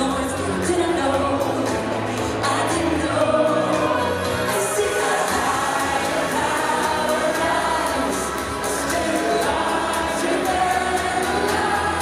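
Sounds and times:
backing vocals: 0.0s - 12.0s
musical accompaniment: 0.0s - 12.0s
woman singing pop song: 0.0s - 12.0s.

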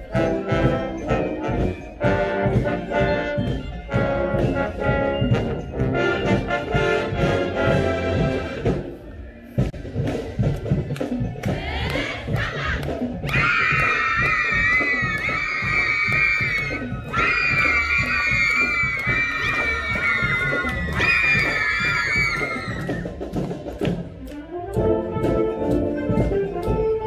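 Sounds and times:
brass tunes: 0.0s - 8.9s, 24.1s - 27.0s
marching band drums: 0.0s - 9.0s, 9.6s - 27.0s
high voices shouting: 11.6s - 23.1s.

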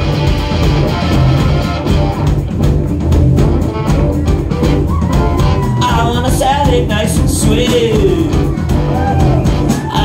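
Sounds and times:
instrumental rock band: 0.0s - 10.0s.

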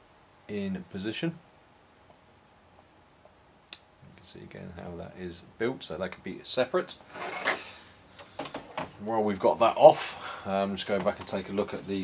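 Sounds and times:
plastic rubbing scrape: 7.1s - 7.8s.

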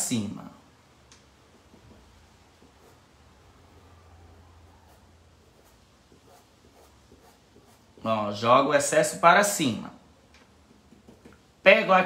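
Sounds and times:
paintbrush scratching fabric: 4.7s - 8.1s.

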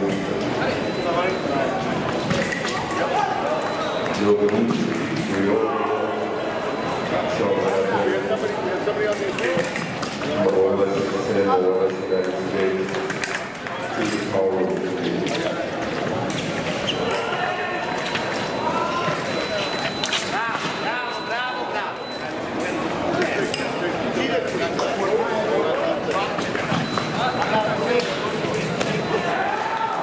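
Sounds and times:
murmur of voices: 0.0s - 30.0s
high electronic beep: 0.6s - 1.8s, 17.9s - 22.4s, 26.7s - 28.0s.

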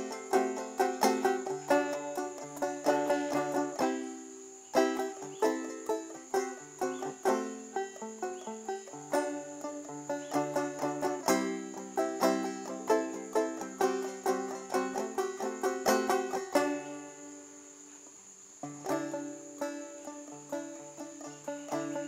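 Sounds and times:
banjo picking a melody: 0.0s - 17.8s, 18.6s - 22.0s.

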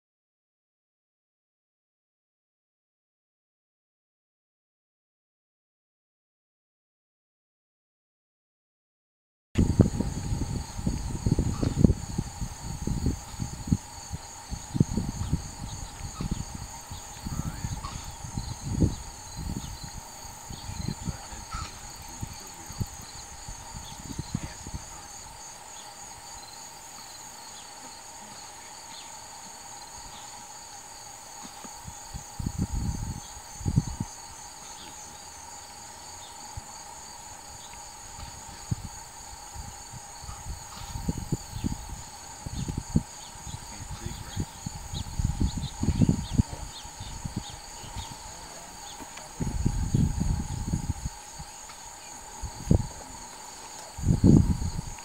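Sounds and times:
insects chirping: 9.6s - 55.0s.

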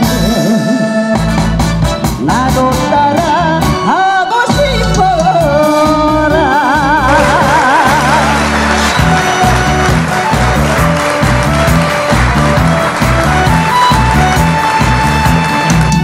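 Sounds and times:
bass and drum beat: 0.0s - 16.0s
pop song melody: 0.0s - 16.0s.

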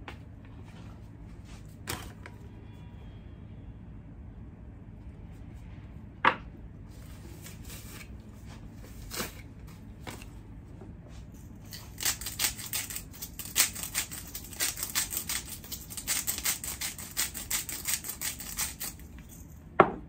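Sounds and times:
cheese rasping on a grater: 11.7s - 19.1s.

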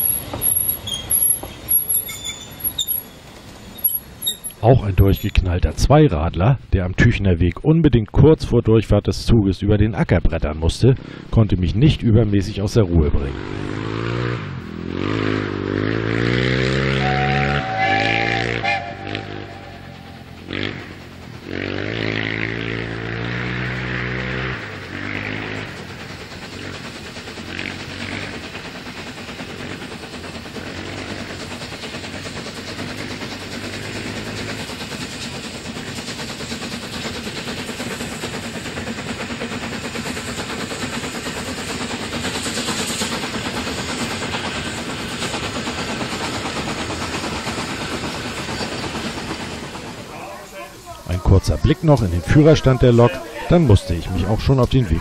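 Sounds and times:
distant steam locomotive running: 0.0s - 55.0s.

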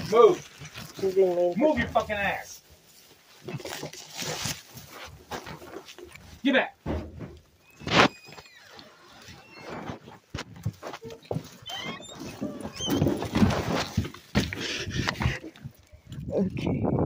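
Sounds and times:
rustling and handling noise: 0.0s - 16.3s
animal squealing: 11.6s - 13.2s.

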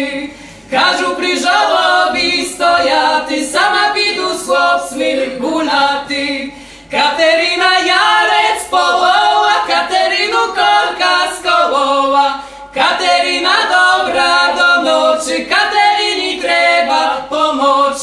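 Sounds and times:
a cappella trio singing: 0.0s - 18.0s.

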